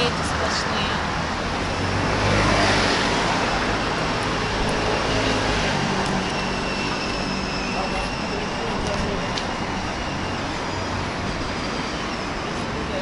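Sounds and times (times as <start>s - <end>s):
rumble of passing cars: 0.0s - 13.0s.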